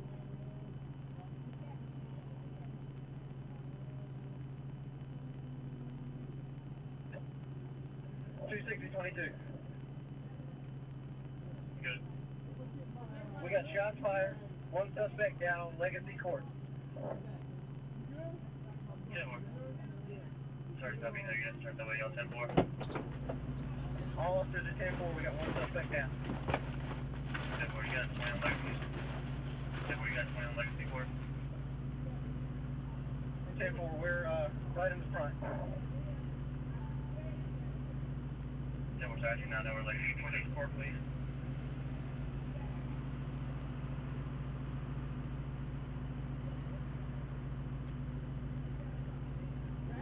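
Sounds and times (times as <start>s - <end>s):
car engine idling hum: 0.0s - 50.0s
police radio voices: 8.1s - 38.2s, 38.8s - 44.0s.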